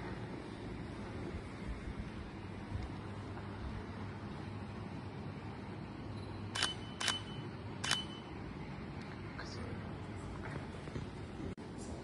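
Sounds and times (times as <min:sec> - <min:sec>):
camera shutter clicks: 0:06.6 - 0:08.1.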